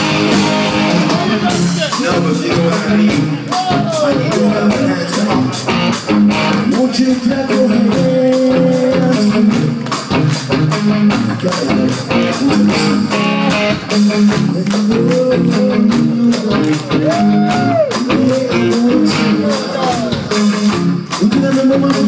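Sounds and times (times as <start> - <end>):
bass guitar: 0.0 - 22.0
electric guitar lead: 0.0 - 22.0
steady drum beat: 0.0 - 22.0.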